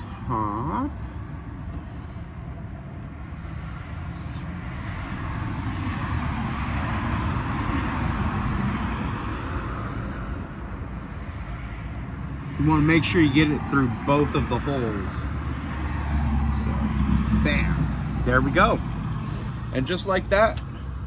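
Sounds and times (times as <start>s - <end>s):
motor vehicle passing: 0.0s - 21.0s.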